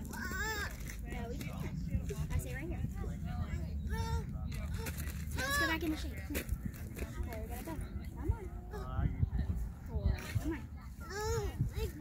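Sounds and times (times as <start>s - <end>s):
constant low rumble: 0.0s - 12.0s
people talking: 0.0s - 12.0s.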